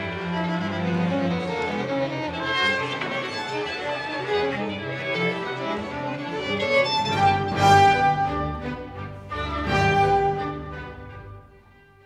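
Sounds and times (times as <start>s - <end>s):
string section playing classical music: 0.0s - 12.0s.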